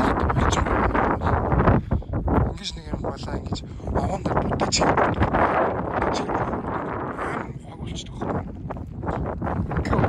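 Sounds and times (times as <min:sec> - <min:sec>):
wind across microphone: 0:00.0 - 0:10.0.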